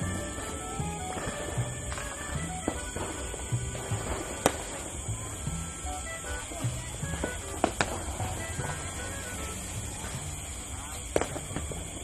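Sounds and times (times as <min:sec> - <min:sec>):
music with repeating low note: 0:00.0 - 0:10.6
faint pops: 0:00.0 - 0:12.0
firecracker bang: 0:00.0 - 0:12.0.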